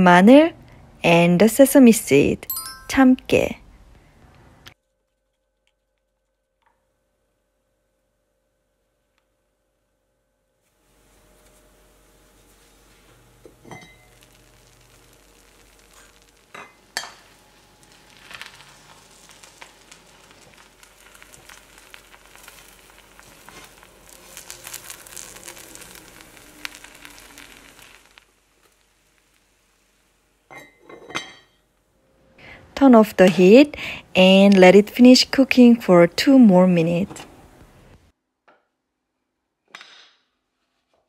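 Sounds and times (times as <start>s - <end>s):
rice sizzling in a pot: 10.5s - 31.7s.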